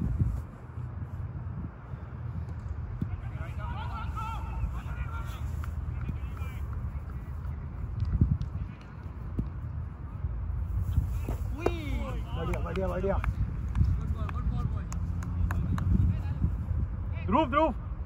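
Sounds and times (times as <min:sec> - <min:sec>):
wind buffeting microphone: 0:00.0 - 0:17.2.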